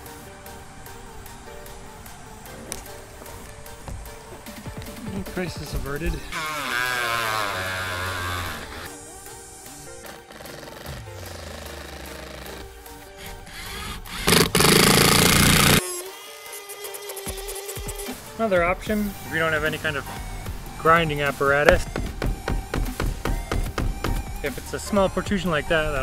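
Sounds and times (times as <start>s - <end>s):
background music with melody: 0.0s - 26.0s
impact driver running a screw: 13.2s - 15.9s.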